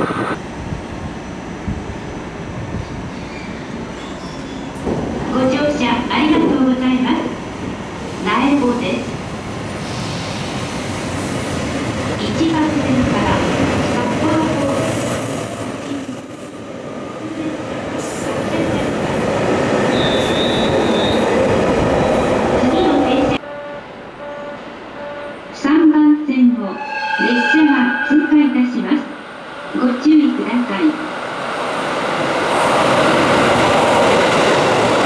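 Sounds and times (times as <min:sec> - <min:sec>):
high wheel squeal: 0:19.9 - 0:21.2, 0:26.7 - 0:28.6.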